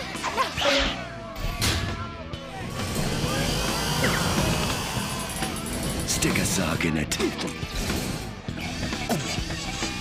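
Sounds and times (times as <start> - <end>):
cartoon soundtrack music: 0.0 - 10.0.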